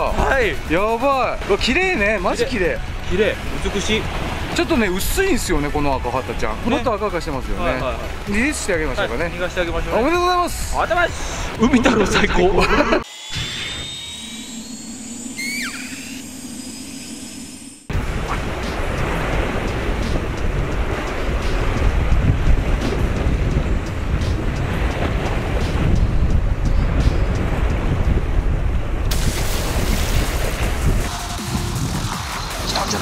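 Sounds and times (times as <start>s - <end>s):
synthetic hum with whistle tones: 13.1s - 18.5s
wind rumbling on microphone: 17.9s - 32.7s.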